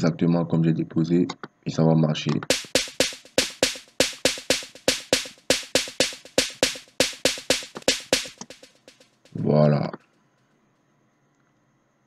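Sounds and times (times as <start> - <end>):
snare drum hits: 2.5 - 9.8.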